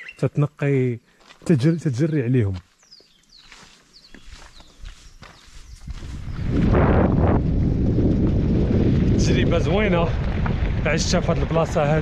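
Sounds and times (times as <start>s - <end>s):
bird chirps: 0.0s - 6.6s
light footsteps: 1.1s - 6.7s
wind rumbling on microphone: 4.2s - 12.0s.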